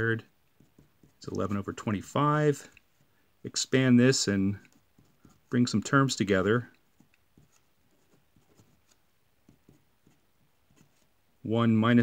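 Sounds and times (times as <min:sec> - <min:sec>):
pen scratching on paper: 0:00.6 - 0:01.8, 0:04.6 - 0:11.1.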